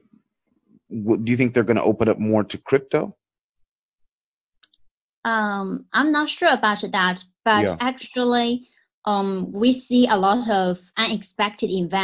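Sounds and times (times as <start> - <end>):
person speaking: 0.9 - 3.1, 7.5 - 8.2.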